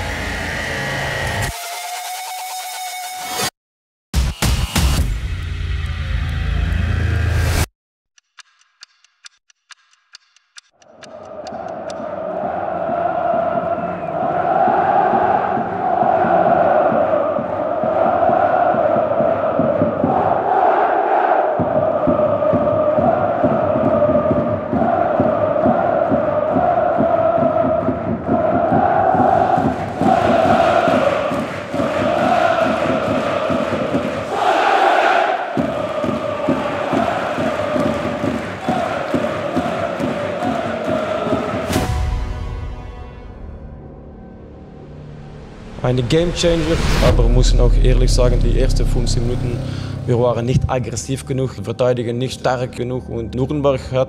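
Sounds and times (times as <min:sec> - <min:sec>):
crowd chanting: 0:10.9 - 0:42.1.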